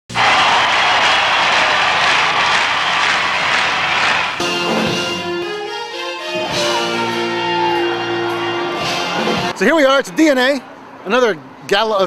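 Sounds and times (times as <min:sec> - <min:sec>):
loud steady rushing noise: 0:00.1 - 0:05.0.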